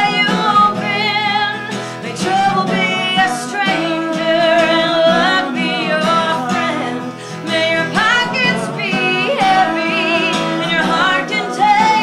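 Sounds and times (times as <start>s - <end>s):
strummed acoustic guitar: 0.0s - 12.0s
woman singing with vibrato: 0.0s - 12.0s.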